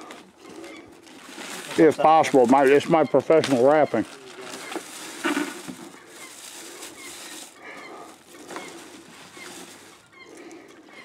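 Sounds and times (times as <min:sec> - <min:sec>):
faint bird calls: 0:00.0 - 0:11.0
cardboard box rustling: 0:01.0 - 0:10.0
tissue paper rustling: 0:01.0 - 0:10.1.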